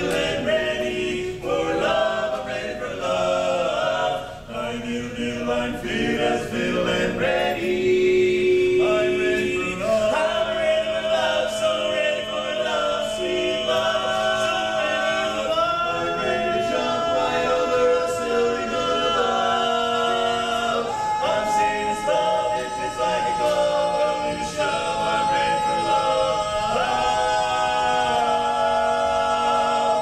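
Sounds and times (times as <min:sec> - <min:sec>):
male quartet singing in harmony: 0:00.0 - 0:30.0.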